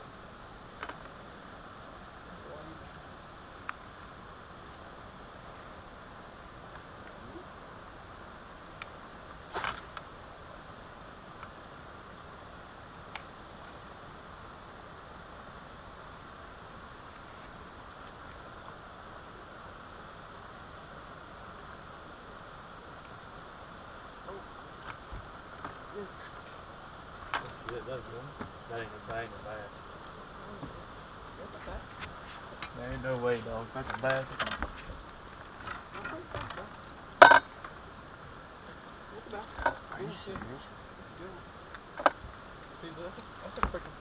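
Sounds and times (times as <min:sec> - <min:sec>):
outdoor background noise: 0:00.0 - 0:44.0.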